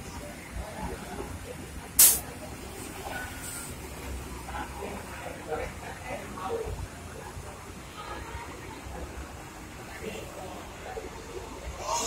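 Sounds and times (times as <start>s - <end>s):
air brakes hissing: 2.0s - 2.2s.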